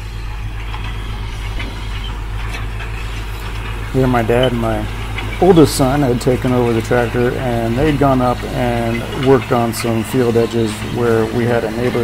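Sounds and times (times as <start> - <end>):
low engine drone inside cab: 0.0 - 12.0.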